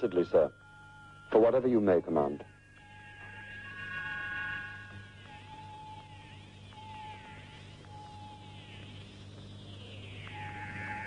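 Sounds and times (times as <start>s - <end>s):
low electronic beep: 0.0s - 11.0s
low hum: 0.0s - 11.0s
high tone sweeping in pitch: 9.8s - 11.0s.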